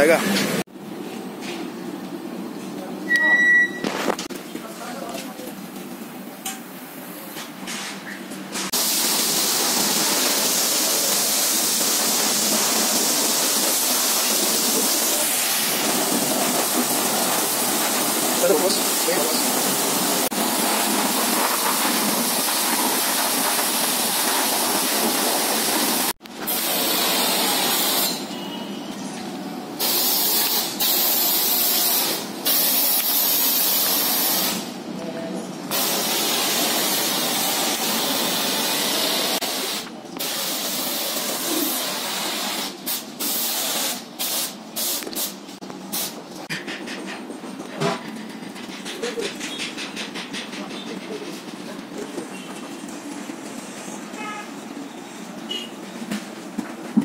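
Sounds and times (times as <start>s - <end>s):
pressure washer spraying water: 8.7s - 28.5s, 29.8s - 34.8s, 35.7s - 46.2s.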